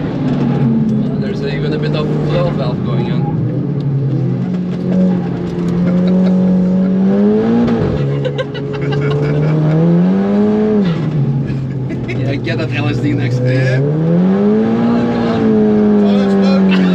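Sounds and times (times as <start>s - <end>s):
car engine accelerating: 0.0s - 16.9s.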